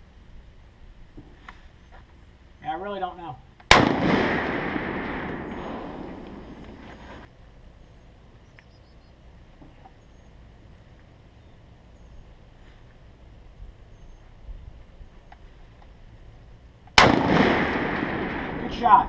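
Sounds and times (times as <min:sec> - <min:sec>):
open-air ambience: 0:00.0 - 0:19.0
rifle shot echo ringing: 0:03.7 - 0:06.8, 0:17.0 - 0:19.0.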